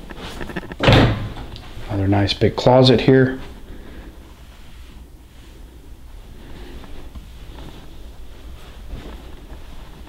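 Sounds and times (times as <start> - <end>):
closet door opening: 0.4 - 1.9
loud thud: 0.5 - 1.5.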